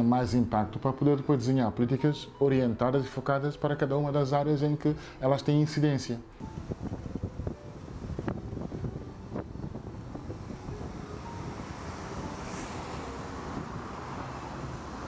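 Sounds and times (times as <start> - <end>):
steady rushing noise: 6.4 - 15.0.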